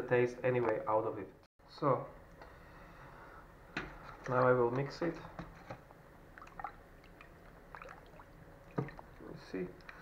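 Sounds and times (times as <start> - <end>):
liquid sloshing in pot: 5.7 - 9.2.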